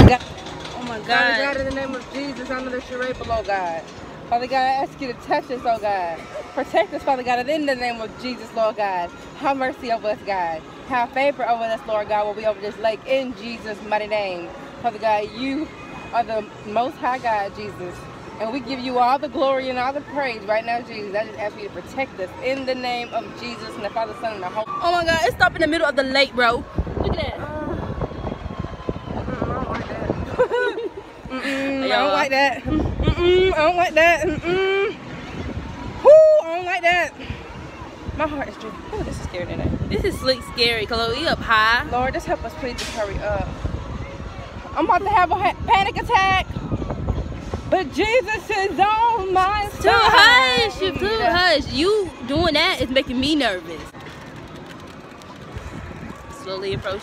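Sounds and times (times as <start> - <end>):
wind buffeting microphone: 0.0 - 6.2, 24.6 - 57.0.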